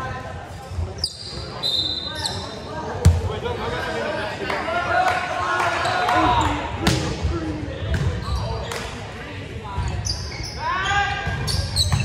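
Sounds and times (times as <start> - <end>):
players and spectators talking: 0.0 - 12.0.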